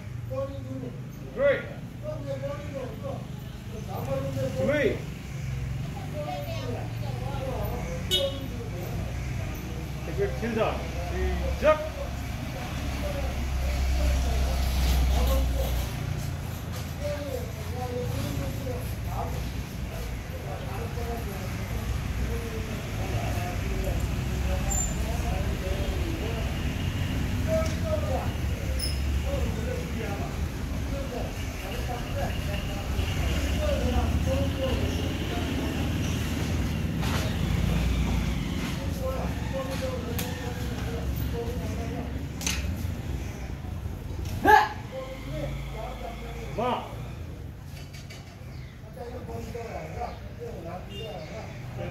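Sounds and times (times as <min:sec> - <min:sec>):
faint distant voices: 0:00.0 - 0:51.9.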